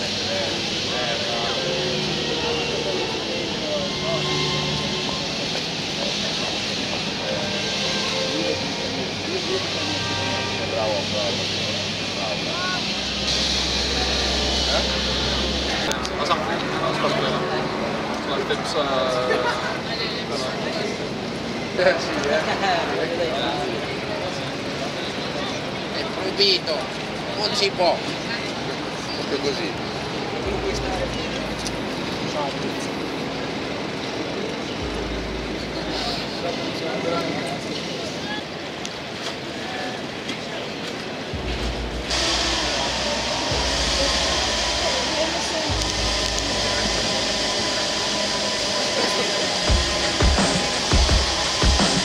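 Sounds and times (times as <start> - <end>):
low engine drone: 0.0 - 20.0, 30.0 - 37.7, 41.2 - 52.0
faint voices: 0.0 - 52.0
waterfront noise: 0.0 - 52.0.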